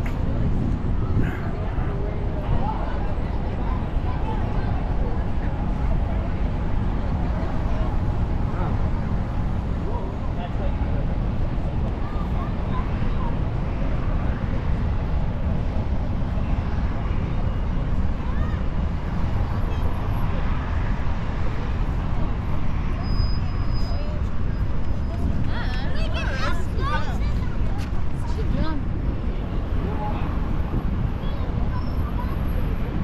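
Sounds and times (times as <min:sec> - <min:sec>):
faint voices talking: 0:00.0 - 0:33.0
steady low street rumble: 0:00.0 - 0:33.0.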